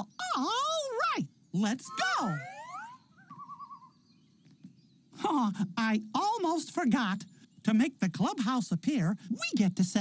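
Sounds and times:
person shouting: 1.8s - 2.7s
warbling tone: 1.8s - 3.6s
rising whistle-like glide: 1.9s - 3.9s.

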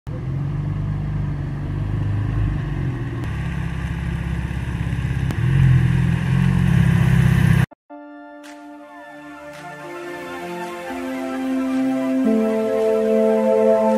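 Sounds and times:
car engine running: 0.1s - 7.7s.

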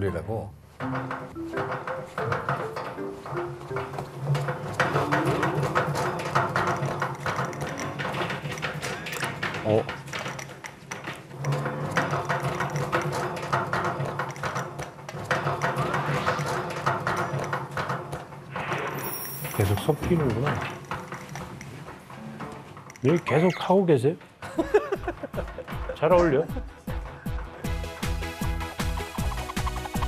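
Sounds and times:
metal mixer clicking and knocking: 0.8s - 18.4s, 19.4s - 27.1s.

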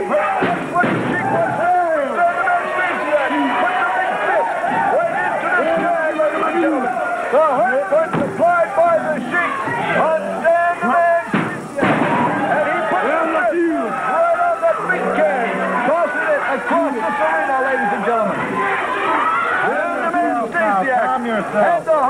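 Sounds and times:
crowd yelling and screaming: 0.0s - 22.0s
loud bang: 11.3s - 12.5s.

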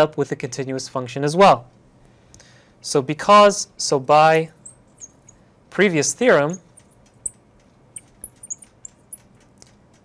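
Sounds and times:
marker squeaking on glass: 4.6s - 5.4s, 6.6s - 7.4s, 8.0s - 9.4s.

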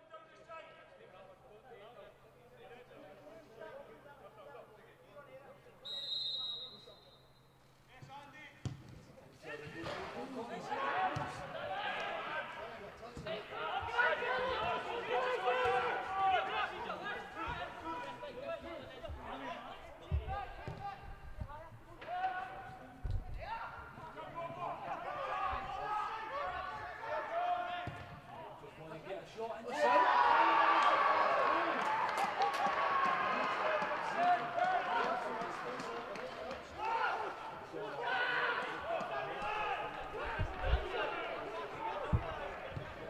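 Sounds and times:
players shouting: 9.6s - 19.5s, 23.7s - 28.0s, 29.7s - 43.0s
football players shouting: 13.3s - 19.6s, 36.7s - 43.0s.

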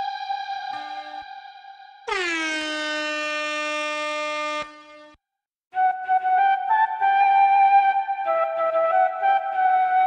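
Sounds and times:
air horn blast in a beat: 2.1s - 5.2s.

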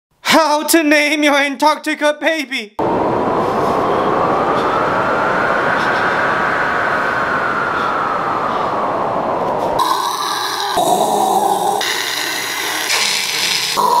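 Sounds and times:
penguin colony calling: 9.8s - 14.0s.

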